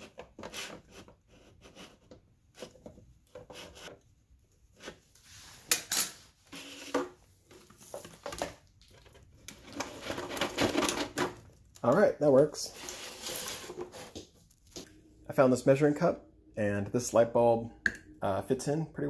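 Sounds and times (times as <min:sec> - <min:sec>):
spoon scraping plastic: 0:00.0 - 0:04.0, 0:12.7 - 0:14.2.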